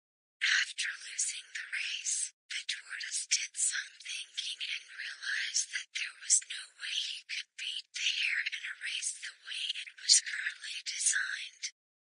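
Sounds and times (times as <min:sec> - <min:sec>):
person whispering: 0:00.4 - 0:11.8.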